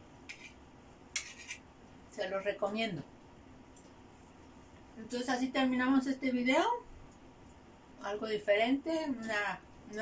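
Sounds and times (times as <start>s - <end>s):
fork scraping a plate: 0.2s - 1.7s.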